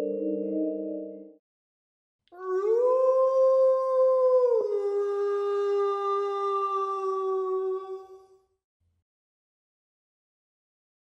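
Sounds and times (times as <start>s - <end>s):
long howl: 2.4s - 8.3s.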